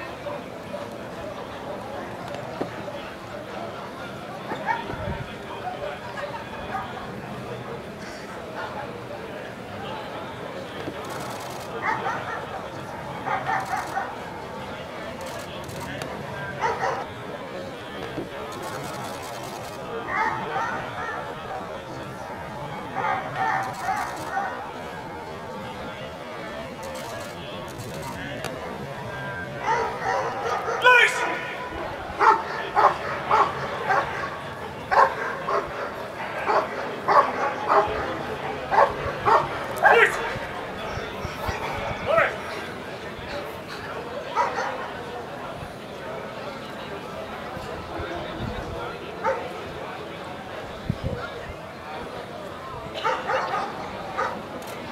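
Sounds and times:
spectators chatting: 0.0s - 54.9s
dog barking: 29.6s - 30.8s, 32.2s - 34.1s, 34.9s - 35.7s, 36.5s - 37.9s, 38.7s - 40.0s, 53.0s - 54.4s
dog barking and person shouting: 30.5s - 31.5s, 39.8s - 40.2s.

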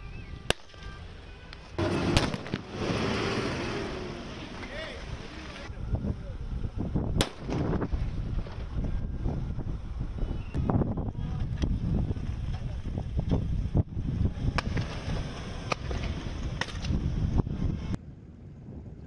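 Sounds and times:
low rumbling noise: 0.0s - 19.0s
gunshots: 1.8s - 3.0s, 7.2s - 7.6s.

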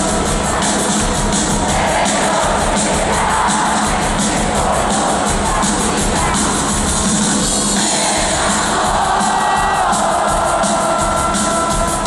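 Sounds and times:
crowd cheering: 0.0s - 6.8s, 7.8s - 12.0s
pop-rock band playing: 0.0s - 12.0s.

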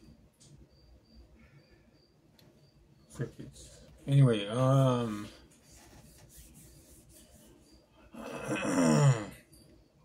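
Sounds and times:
hands rubbing together: 5.6s - 7.6s.

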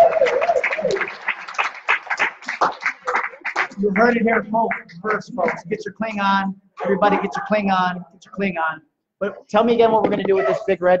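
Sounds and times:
audience clapping: 0.0s - 6.3s.

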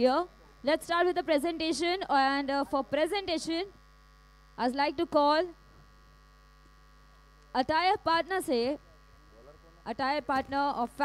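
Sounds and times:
woman speaking into a microphone: 0.0s - 3.8s, 4.6s - 5.6s, 7.5s - 8.8s, 9.9s - 11.0s
faint mains hum: 0.0s - 11.0s.

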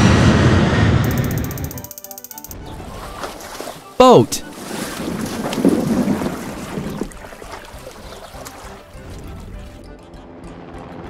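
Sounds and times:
boat rushing through water: 2.6s - 9.8s.

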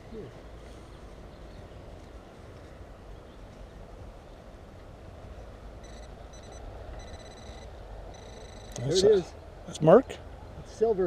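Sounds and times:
metal detector beeps: 5.8s - 9.0s.

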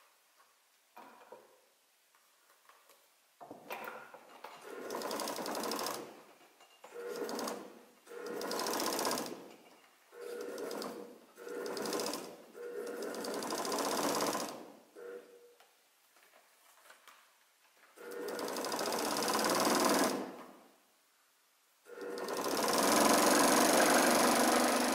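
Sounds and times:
sewing machine stitching: 4.6s - 6.2s, 6.9s - 9.5s, 10.2s - 14.7s, 18.0s - 20.4s, 21.9s - 24.9s.

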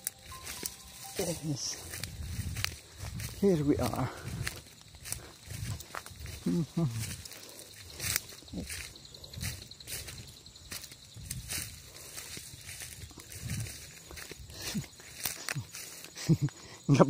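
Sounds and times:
footsteps on a trail: 0.0s - 16.8s
grass rustling against walker: 0.0s - 17.0s
man speaking: 1.0s - 2.0s, 3.3s - 4.4s, 6.4s - 7.1s.

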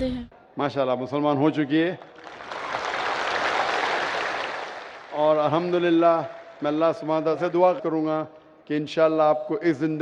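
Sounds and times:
large crowd applauding: 1.7s - 8.0s.

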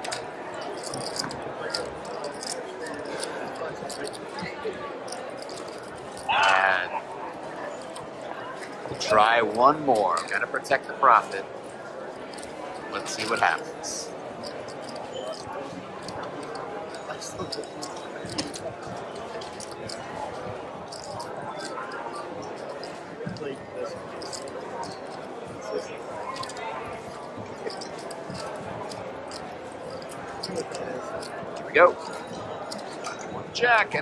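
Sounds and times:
cards and chips clicking: 0.0s - 4.4s, 5.0s - 6.9s, 7.8s - 10.9s, 12.2s - 20.2s, 20.9s - 33.3s
murmur of voices: 0.0s - 34.0s.

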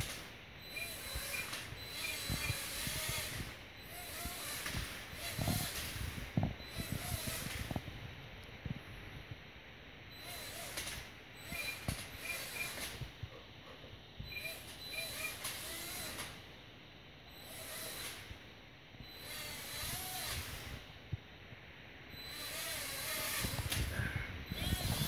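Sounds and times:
toy drone motors whirring: 0.0s - 7.9s, 10.1s - 13.1s, 14.2s - 16.5s, 17.3s - 18.4s, 19.0s - 20.9s, 22.1s - 25.0s.

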